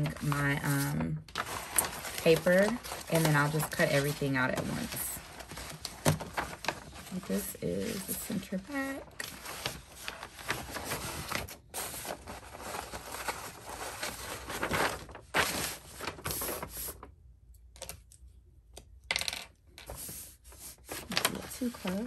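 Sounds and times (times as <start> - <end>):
tracing paper rustling and crinkling: 0.0 - 17.1, 19.9 - 22.0.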